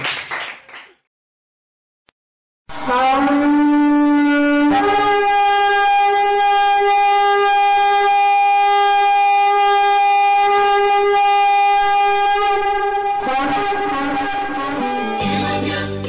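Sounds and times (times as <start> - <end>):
long steady horn note: 2.7 - 15.6.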